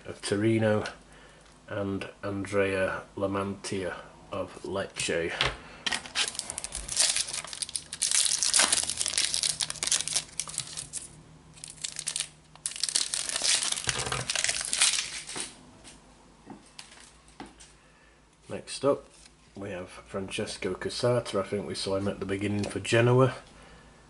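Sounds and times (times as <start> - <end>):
foil wrapper crinkling and tearing: 6.0 - 15.5.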